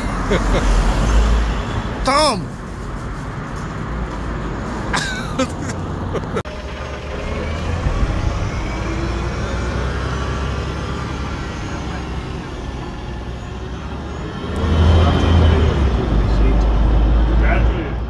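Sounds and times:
vehicle engine rumbling: 0.0 - 18.0.

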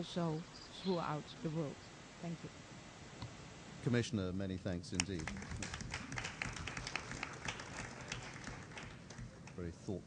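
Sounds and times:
audience applause: 5.0 - 9.7.

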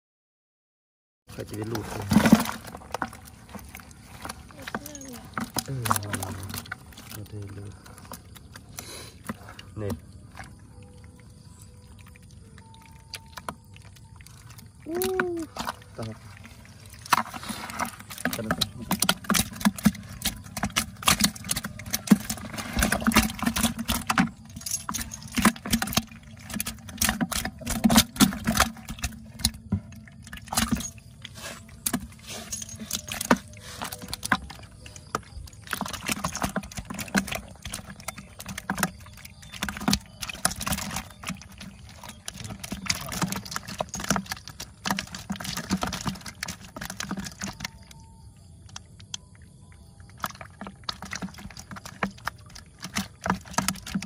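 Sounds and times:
fish flapping in a container: 1.3 - 54.0.

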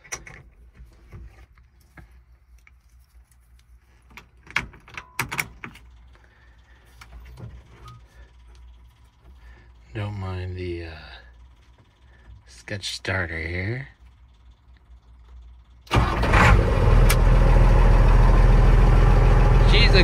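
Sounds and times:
low steady rumble: 0.0 - 20.0.

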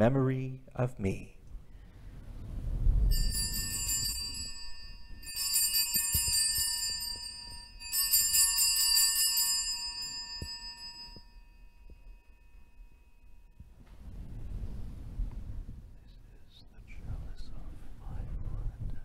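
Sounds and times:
low rumble: 1.4 - 5.3, 13.6 - 19.0
altar bells jingling: 3.1 - 13.6.

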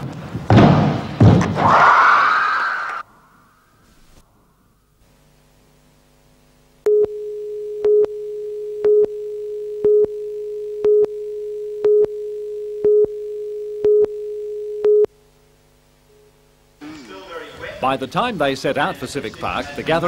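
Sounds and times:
faint hum: 2.3 - 20.0
steady line-up tone: 4.7 - 16.8
countdown beeps: 6.9 - 10.2, 10.8 - 15.1.

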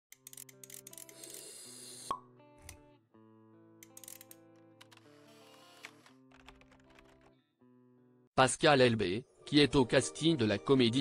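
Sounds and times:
soft background music: 0.1 - 11.0.

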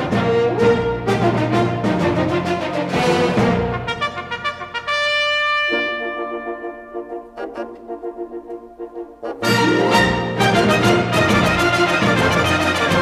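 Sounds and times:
brass-led orchestral music: 0.0 - 13.0.

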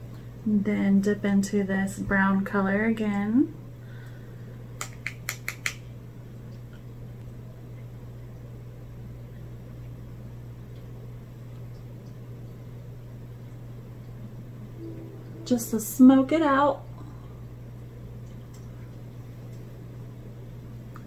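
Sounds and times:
low room hum: 0.0 - 21.0.

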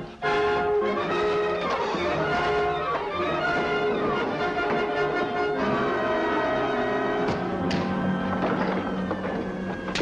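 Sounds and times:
orchestral film music: 0.0 - 10.0.

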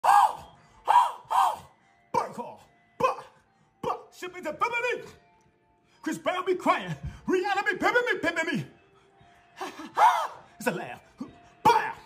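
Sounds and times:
man shouting wordless ad-libs: 11.6 - 12.0.

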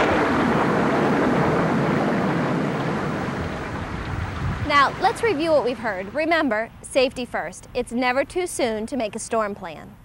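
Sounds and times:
rain: 0.0 - 6.2
wind: 0.0 - 10.0.

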